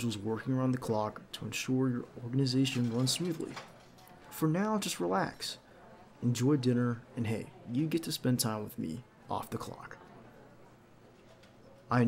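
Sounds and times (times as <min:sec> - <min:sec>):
man talking: 0:00.0 - 0:03.7, 0:06.2 - 0:10.0
faint background hiss: 0:00.0 - 0:12.0.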